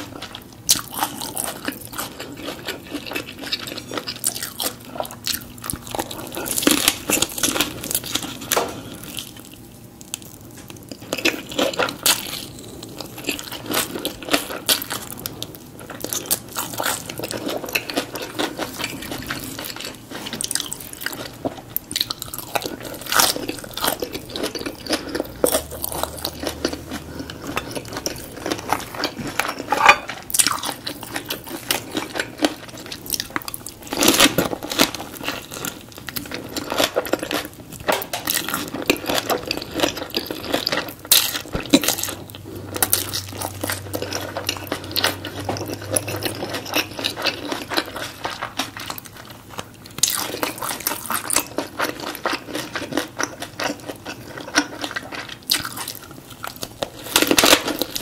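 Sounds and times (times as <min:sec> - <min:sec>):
wet crunching chewing: 0:00.0 - 0:58.0.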